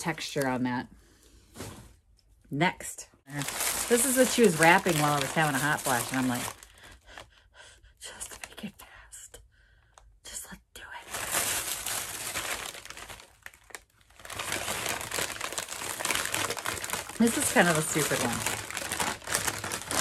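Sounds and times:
wrapping paper crinkling: 3.3s - 7.3s, 11.1s - 20.0s.

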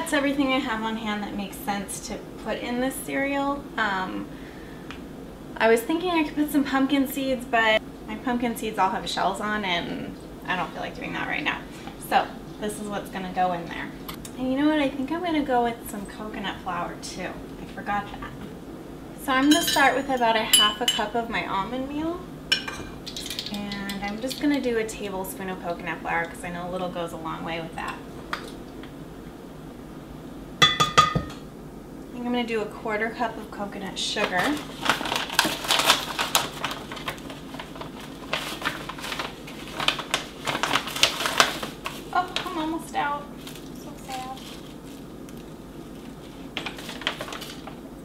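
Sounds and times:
bag crinkling and rustling: 34.2s - 47.8s.

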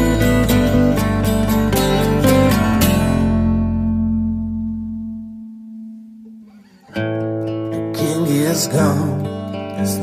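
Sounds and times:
strummed guitar chord: 0.0s - 10.0s.

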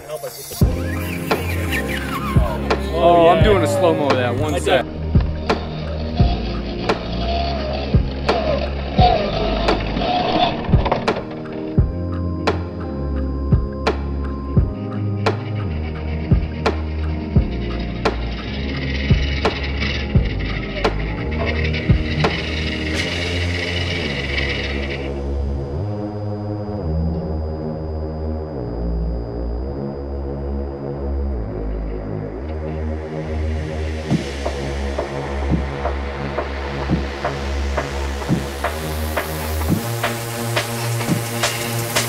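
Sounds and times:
rising hiss: 0.0s - 4.8s, 33.9s - 42.0s
electronic dance music: 0.0s - 25.2s, 33.0s - 42.0s
sustained synth chords: 0.0s - 42.0s.

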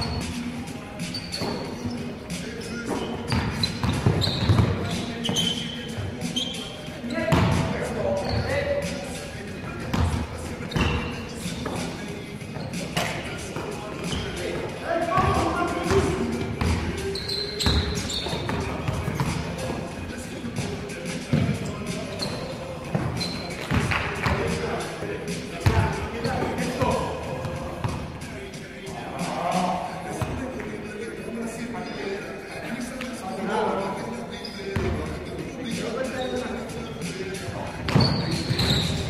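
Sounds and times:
basketball bouncing on court: 2.9s - 5.4s, 7.3s - 7.7s.

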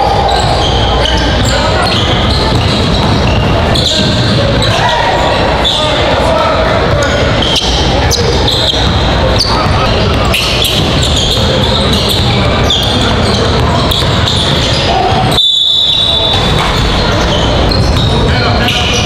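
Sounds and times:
crowd chatter: 0.0s - 19.0s
sneakers squeaking: 0.0s - 19.0s.

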